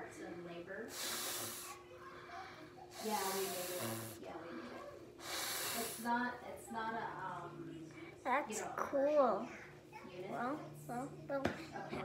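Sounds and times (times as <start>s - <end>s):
child blowing through wet cloth: 0.9s - 1.8s, 5.2s - 6.0s.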